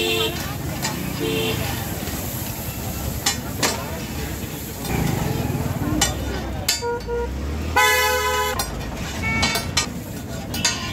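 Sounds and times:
vehicle horn honking: 0:06.8 - 0:08.6.

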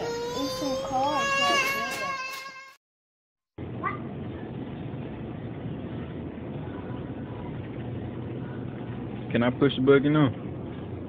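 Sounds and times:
small child whining: 0:00.0 - 0:02.8
store background hum and hiss: 0:03.6 - 0:11.0.

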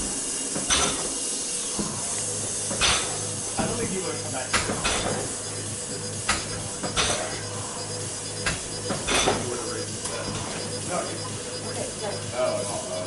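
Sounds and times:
rowing machine flywheel whoosh: 0:00.0 - 0:10.7.

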